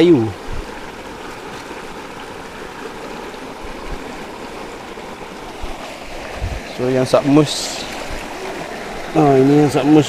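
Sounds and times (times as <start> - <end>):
stream flowing over rocks: 0.0 - 10.0.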